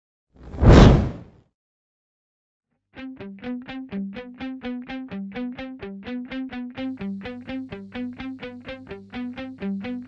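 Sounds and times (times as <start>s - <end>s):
whoosh: 0.4s - 1.2s.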